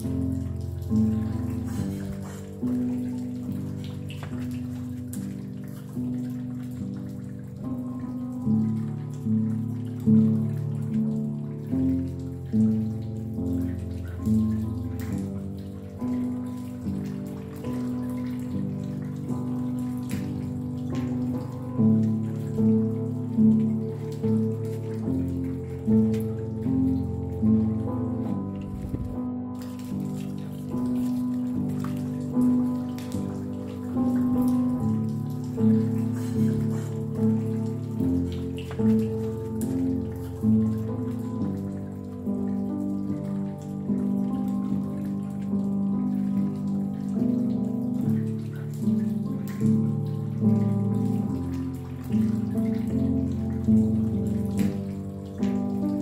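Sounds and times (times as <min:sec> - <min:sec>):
slow calm piano music: 0:00.0 - 0:56.0.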